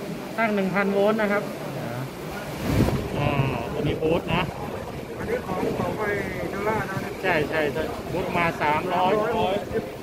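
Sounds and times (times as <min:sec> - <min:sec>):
low rumbling on microphone: 0:02.4 - 0:10.0.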